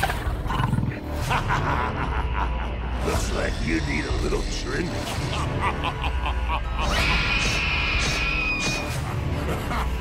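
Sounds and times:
low droning music: 0.0 - 10.0.

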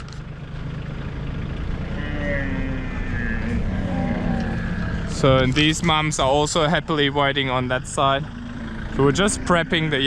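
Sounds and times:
tractor engine running: 0.0 - 10.0
camel calling: 1.7 - 6.6, 8.0 - 10.0.

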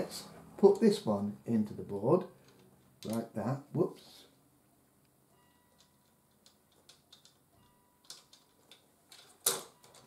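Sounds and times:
plastic and pins clicking on board: 5.8 - 7.4.

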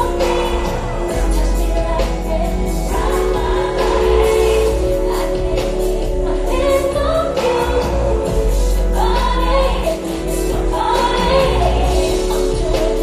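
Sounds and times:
woman singing: 0.0 - 13.0.

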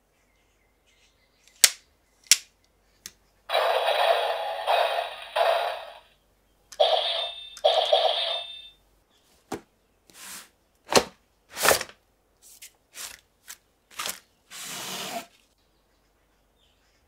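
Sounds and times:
toy electronic sound effects: 3.5 - 6.1, 6.8 - 8.8.

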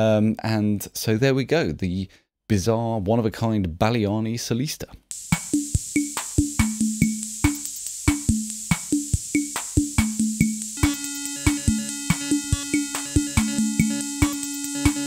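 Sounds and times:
drum machine pattern: 5.1 - 15.0
held keyboard notes: 10.7 - 15.0
high-pitched whine: 10.8 - 15.0.

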